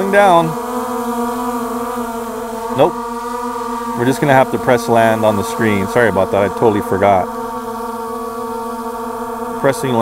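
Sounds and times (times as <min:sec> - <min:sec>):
drone propellers buzzing hum: 0:00.0 - 0:10.0.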